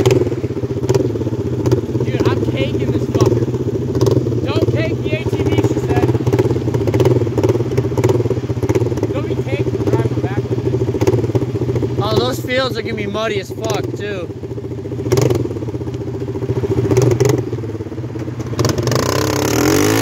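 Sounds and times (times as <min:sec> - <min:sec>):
atv engines idling: 0:00.0 - 0:20.0.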